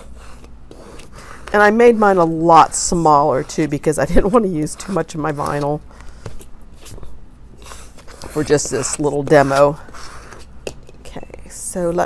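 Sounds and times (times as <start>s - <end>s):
low room hum: 0.0s - 12.0s
rubbing on vinyl sheet: 7.6s - 10.5s.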